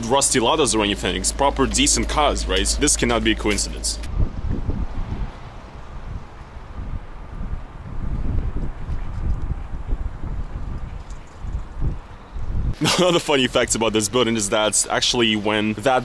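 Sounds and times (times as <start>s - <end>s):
wind buffeting microphone: 0.0s - 12.8s.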